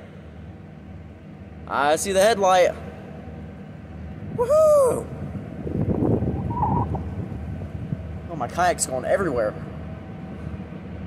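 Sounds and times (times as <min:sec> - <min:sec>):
diesel locomotive hum: 0:00.0 - 0:11.0
wind buffeting microphone: 0:04.0 - 0:10.7.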